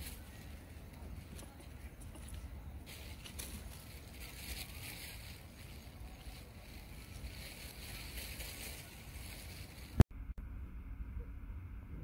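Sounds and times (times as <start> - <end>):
low wind rumble on microphone: 0.0 - 12.0.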